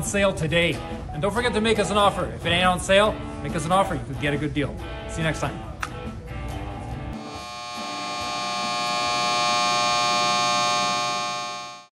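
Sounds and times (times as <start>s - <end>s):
buzzy electronic tone: 7.2s - 11.9s.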